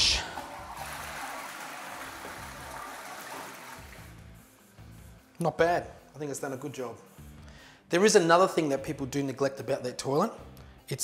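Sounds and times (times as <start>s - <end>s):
toilet flushing: 0.0s - 4.2s.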